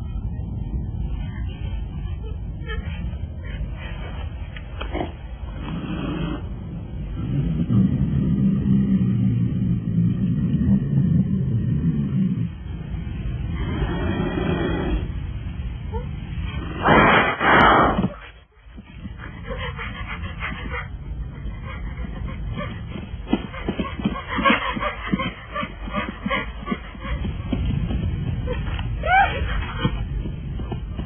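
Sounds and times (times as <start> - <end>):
loud animal snarl: 4.8 - 6.5, 13.5 - 15.1, 16.6 - 18.2.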